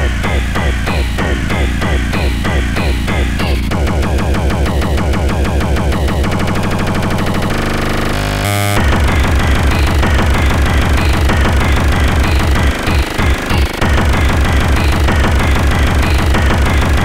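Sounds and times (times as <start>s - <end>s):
fast pounding kick drum: 0.0s - 7.6s, 8.8s - 17.0s
electronic noise and synth: 0.0s - 17.0s.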